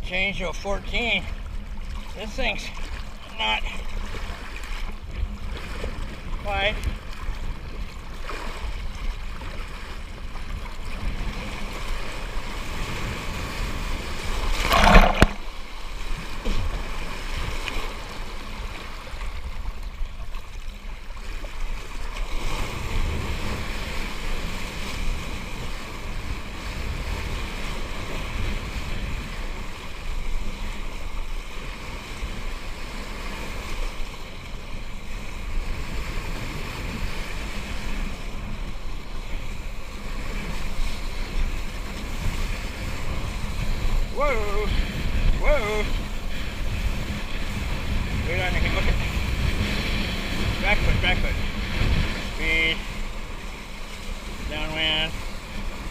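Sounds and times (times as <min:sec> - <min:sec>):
water rushing under board: 0:00.0 - 0:55.9
wind buffeting microphone: 0:35.1 - 0:54.5.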